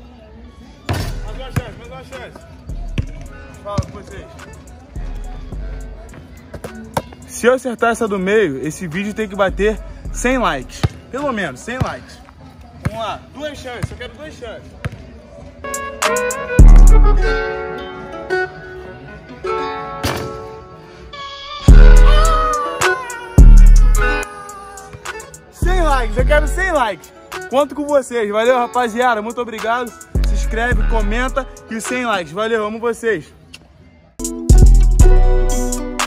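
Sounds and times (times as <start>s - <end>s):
basketball bouncing on concrete: 3.0s - 3.2s, 13.8s - 14.0s, 14.8s - 15.0s
background music with a beat: 15.7s - 17.5s, 21.6s - 32.0s, 34.2s - 36.0s
plucked guitar chords: 16.1s - 18.7s, 21.7s - 24.2s, 34.2s - 36.0s.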